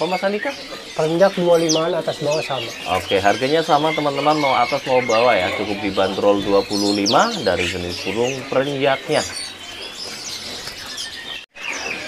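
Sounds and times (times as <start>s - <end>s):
background noise: 0.0s - 12.0s
songbirds chirping and twittering: 0.0s - 12.0s.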